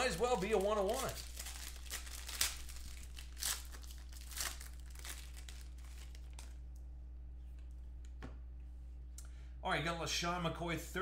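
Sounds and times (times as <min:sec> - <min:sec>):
foil card pack tearing and crinkling: 0:00.0 - 0:06.5.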